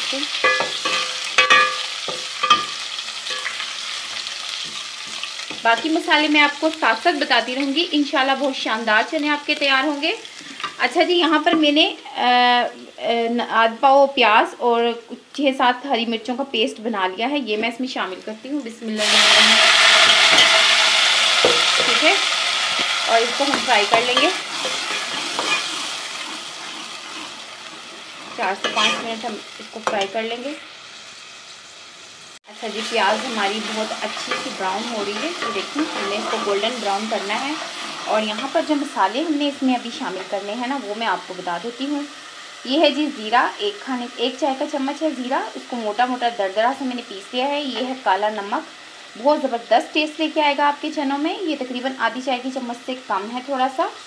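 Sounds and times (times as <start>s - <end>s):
paste sizzling in hot fat: 0.0s - 12.0s, 18.8s - 54.0s
spoon clinking against pan: 0.4s - 3.6s, 28.6s - 29.1s, 34.3s - 36.3s.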